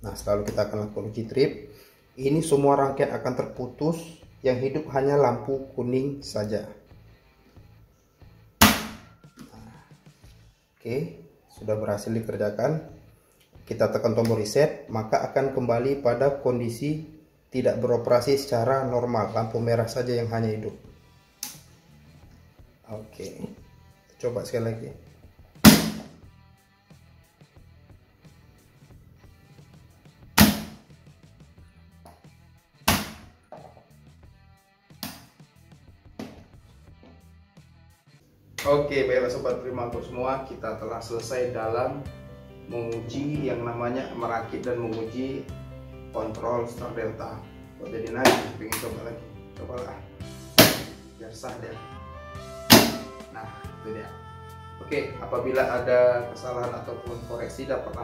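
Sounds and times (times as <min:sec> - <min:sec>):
low background music: 0:00.0 - 0:58.0.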